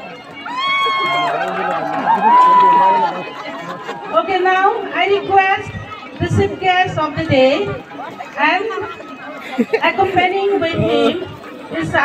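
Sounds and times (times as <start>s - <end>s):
festival crowd noise: 0.0s - 12.0s.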